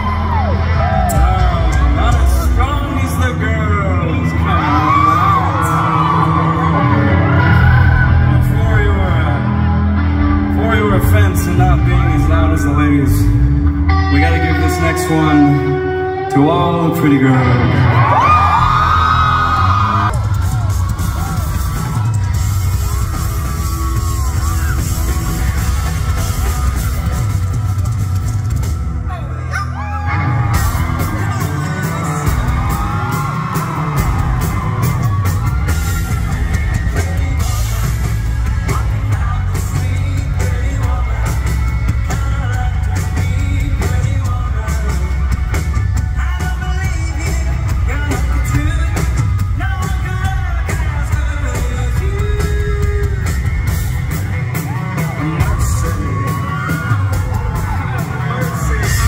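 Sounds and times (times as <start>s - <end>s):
bass guitar: 0.0s - 59.0s
rock band playing: 0.0s - 59.0s
man singing into microphone: 37.0s - 53.3s.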